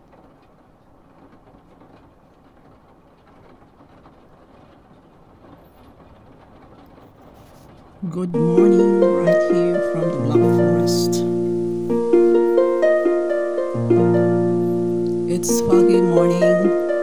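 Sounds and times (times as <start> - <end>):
low rumble and hiss: 0.0 - 17.0
rain in a town: 0.0 - 17.0.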